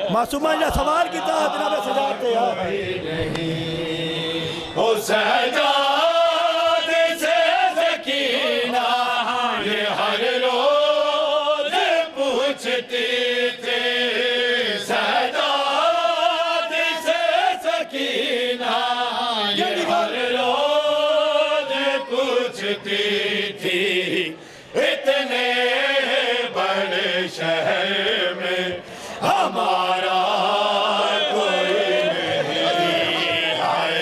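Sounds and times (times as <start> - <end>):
men chanting in unison: 0.0 - 34.0.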